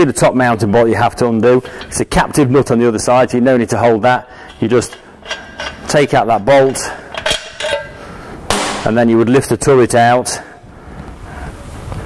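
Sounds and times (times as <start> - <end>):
metal knocking and rubbing: 1.1 - 8.8.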